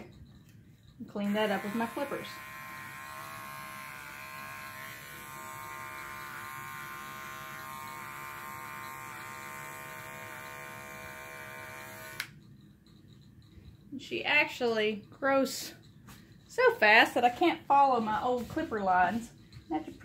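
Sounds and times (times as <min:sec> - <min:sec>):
electric clippers humming: 0:01.2 - 0:12.4.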